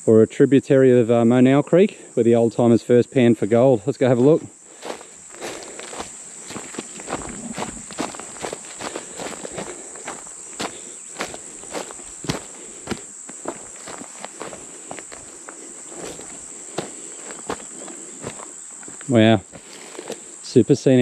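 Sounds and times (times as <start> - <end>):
high-pitched insect drone: 1.4 - 21.0
footsteps through grass and leaves: 4.1 - 21.0.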